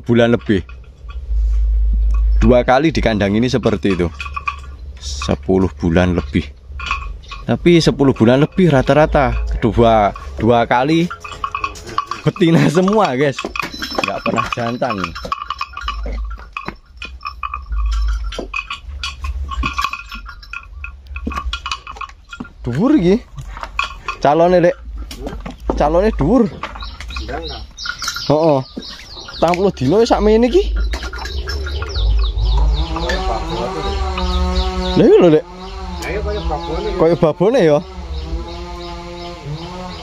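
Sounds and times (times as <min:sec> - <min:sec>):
low rumble: 0:00.0 - 0:14.3, 0:29.0 - 0:37.2
small bell clinking: 0:00.0 - 0:35.3
small birds chirping: 0:00.0 - 0:40.0
cattle mooing: 0:08.2 - 0:16.4, 0:29.0 - 0:40.0.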